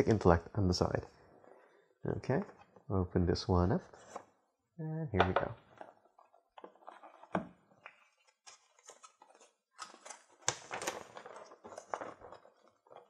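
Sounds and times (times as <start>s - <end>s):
paper rustling: 5.7s - 13.0s.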